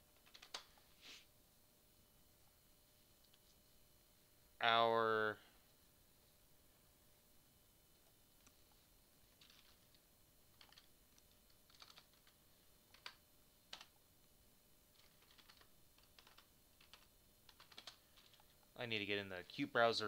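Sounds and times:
computer keyboard typing: 0:00.1 - 0:00.8, 0:09.4 - 0:14.0, 0:14.9 - 0:18.6.

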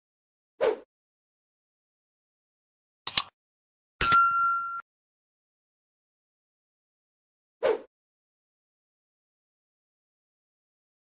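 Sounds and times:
bright bell ding: 0:04.0 - 0:04.8.

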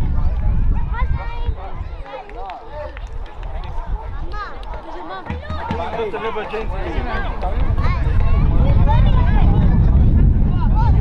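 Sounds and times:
players calling and shouting: 0:01.5 - 0:08.0
low rumble: 0:07.4 - 0:11.0.

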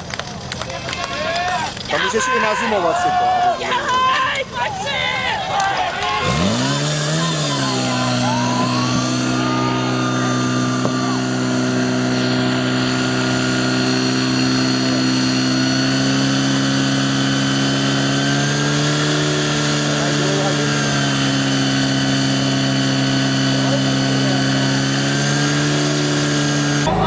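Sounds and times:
fire pump engine revving: 0:00.0 - 0:27.0.

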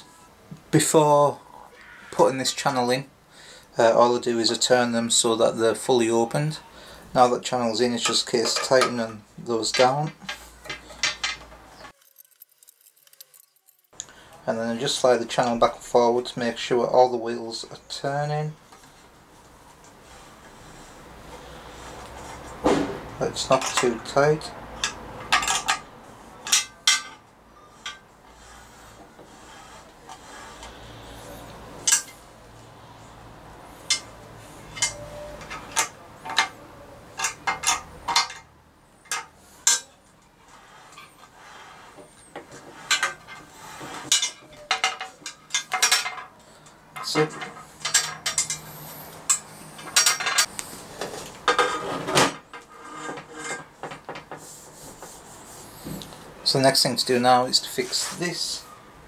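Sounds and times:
metal plate sliding on wheels: 0:20.0 - 0:33.1, 0:39.0 - 0:44.6, 0:45.2 - 0:56.0.

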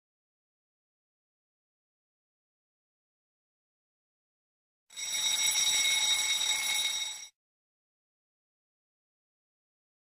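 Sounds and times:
high-pitched timer alarm: 0:04.9 - 0:07.4.

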